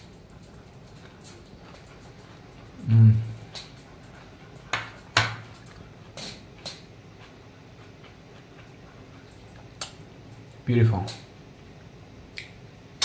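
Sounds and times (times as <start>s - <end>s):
chewing crisp lettuce: 0.0s - 4.7s, 5.5s - 10.6s.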